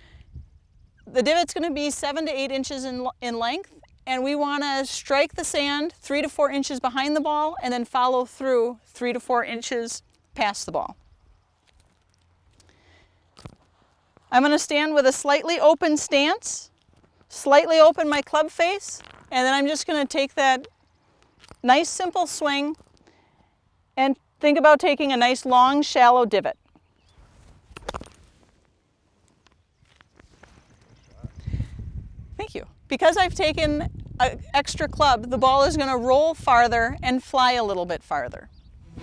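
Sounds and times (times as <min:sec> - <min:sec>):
low rumble: 0:38.6 - 0:39.0
short soft sound: 0:38.7 - 0:39.0.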